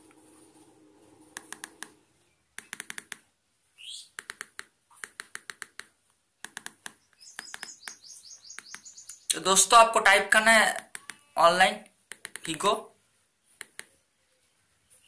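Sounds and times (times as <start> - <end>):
phone keypad presses: 1.4 - 2.0, 2.6 - 3.2, 4.2 - 7.8, 12.1 - 12.6
faint high twittering: 3.8 - 4.2, 6.9 - 9.7.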